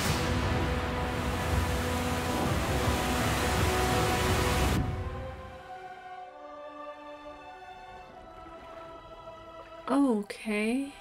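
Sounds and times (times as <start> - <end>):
low rumble and rushing noise: 0.0 - 5.6
soundtrack music: 0.0 - 10.2.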